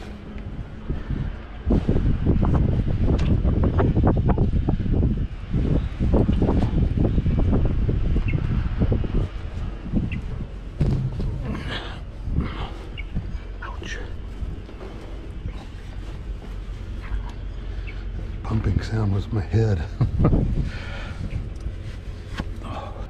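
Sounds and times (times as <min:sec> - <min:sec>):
clothing rustling against microphone: 0:00.0 - 0:03.2, 0:08.5 - 0:23.0.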